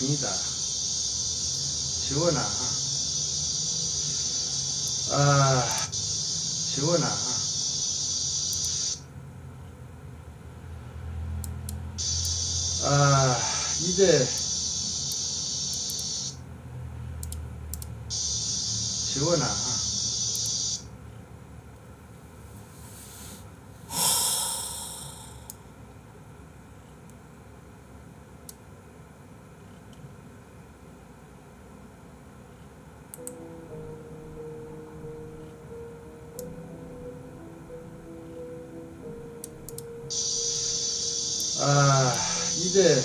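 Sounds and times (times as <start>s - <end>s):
soft background music: 0.0s - 8.8s, 12.0s - 15.7s, 18.1s - 20.7s, 33.2s - 43.0s
breathy exhale into microphone: 22.8s - 25.5s.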